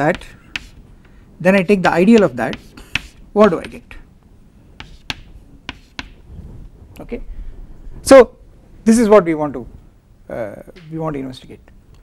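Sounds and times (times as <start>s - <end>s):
chalk tapping on chalkboard: 0.0s - 1.2s, 1.8s - 4.0s, 4.8s - 6.2s.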